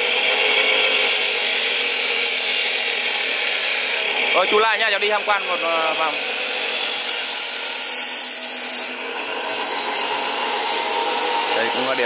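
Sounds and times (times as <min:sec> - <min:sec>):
bench grinder grinding blade: 0:00.0 - 0:12.0.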